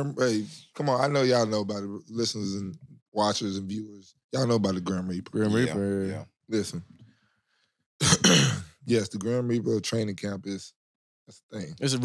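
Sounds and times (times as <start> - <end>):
man speaking: 0.0 - 6.9, 8.0 - 10.7, 11.4 - 12.0
man clearing his throat: 8.0 - 8.8.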